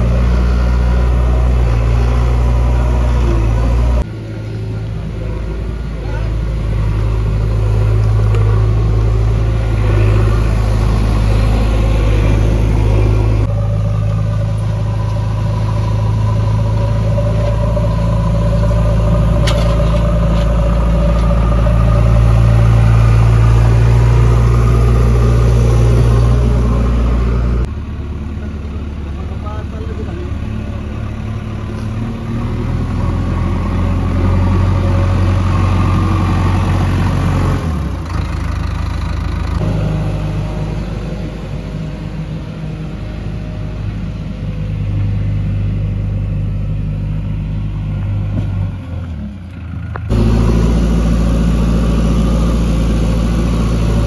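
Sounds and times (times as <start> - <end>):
diesel engine running: 0.0 - 54.0.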